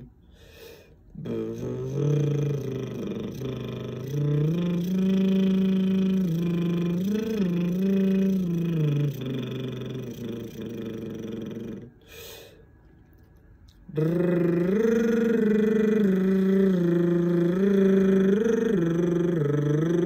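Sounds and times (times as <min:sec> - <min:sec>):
man humming: 0:01.1 - 0:12.0, 0:13.9 - 0:20.0.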